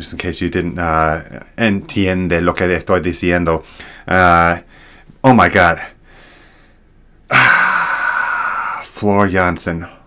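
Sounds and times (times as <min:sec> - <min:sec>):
man sighing: 0:07.3 - 0:08.9.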